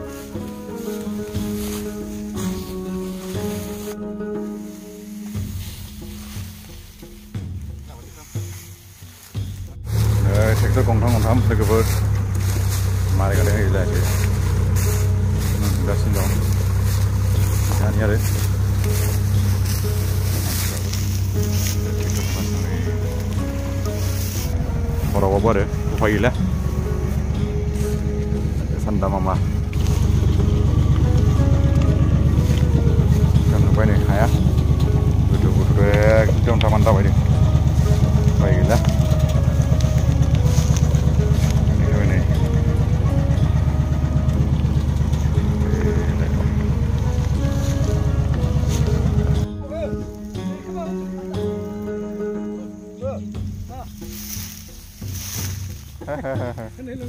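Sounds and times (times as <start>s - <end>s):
tractor engine running: 0.0s - 57.0s.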